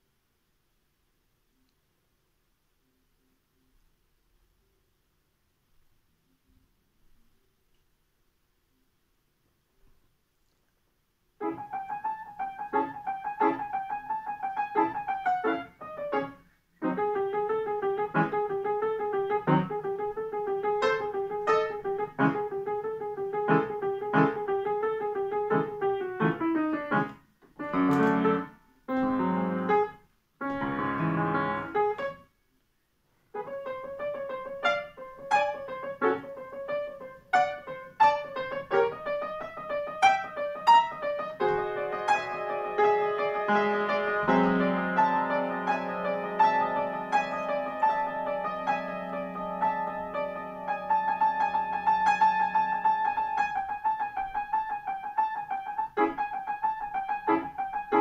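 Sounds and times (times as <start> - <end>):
grand piano piece: 11.4 - 32.3, 33.3 - 58.0.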